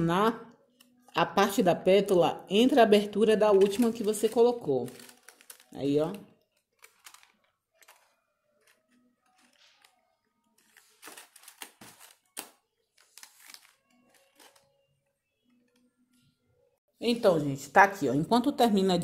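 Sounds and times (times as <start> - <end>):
stiff paper rustling and crinkling: 3.5 - 14.8.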